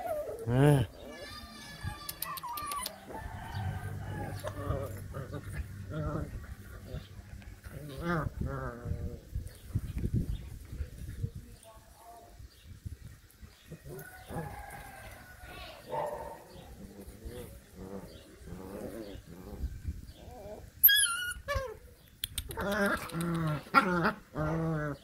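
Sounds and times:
puppies growling and whining: 0.0s - 9.8s, 16.7s - 21.9s, 22.5s - 25.0s
puppy yelping: 1.2s - 3.2s, 20.8s - 21.8s.

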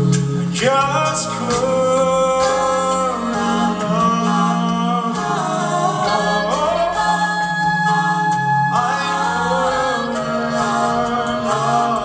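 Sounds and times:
a cappella group singing harmony: 0.0s - 12.0s.

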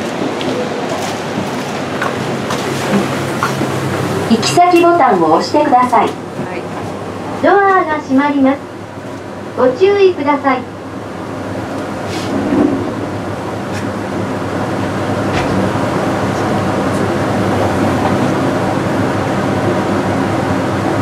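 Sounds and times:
elevator car running on track: 0.0s - 21.0s.

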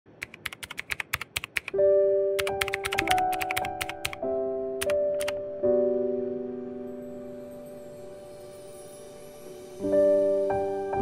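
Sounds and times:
keyboard keystroke clicks: 0.2s - 1.8s, 2.4s - 4.2s, 4.8s - 5.4s.

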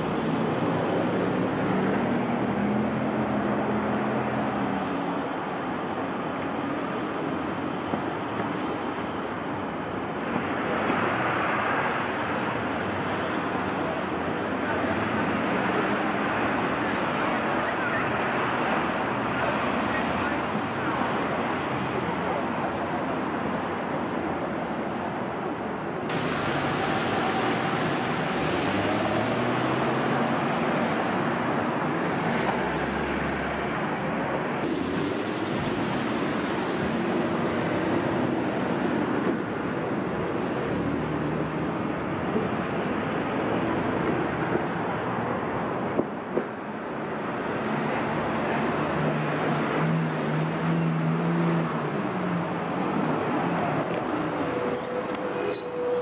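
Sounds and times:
bus pulling past: 0.0s - 5.3s, 26.1s - 46.0s, 46.9s - 56.0s
steady engine hum: 0.0s - 56.0s
street traffic: 0.0s - 56.0s.

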